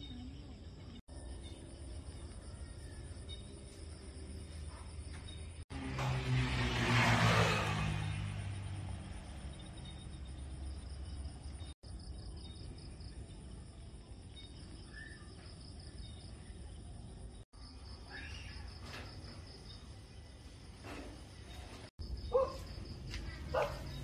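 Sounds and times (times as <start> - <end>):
night insects chirping: 7.8 - 24.0.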